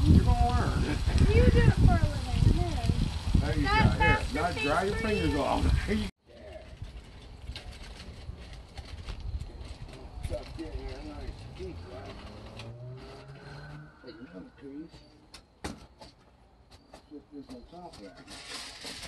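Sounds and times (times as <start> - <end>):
distant voices: 0.0 - 19.0
vehicle engine hum passing: 10.4 - 14.9.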